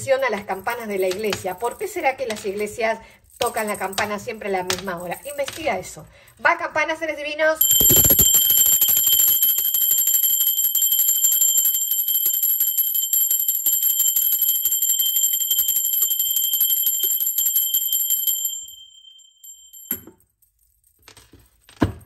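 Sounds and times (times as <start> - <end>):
handbell ringing rapidly: 7.6 - 20.0.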